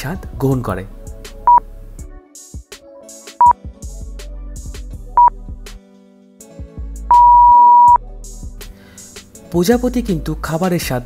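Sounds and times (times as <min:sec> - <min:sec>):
quiet background music: 0:00.0 - 0:11.0
short electronic beep: 0:07.1 - 0:08.0.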